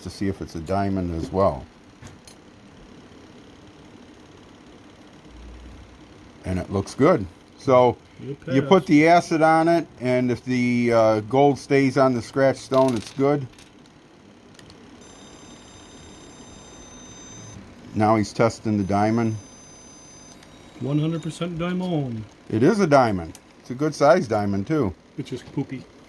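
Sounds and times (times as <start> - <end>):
faint room tone hum: 0.0 - 26.0
high-pitched electronic whine: 15.0 - 22.1.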